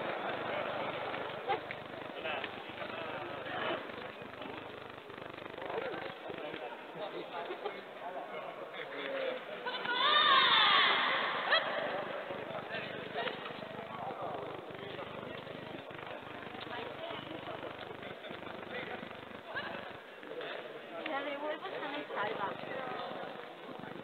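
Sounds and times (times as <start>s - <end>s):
quieter shouts and voices: 9.7s - 13.4s
loud high shout: 9.8s - 11.6s.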